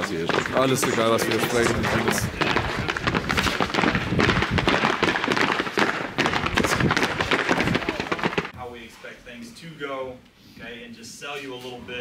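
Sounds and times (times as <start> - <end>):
football cleats clacking: 0.0 - 8.6
group footsteps on paving: 0.0 - 8.6.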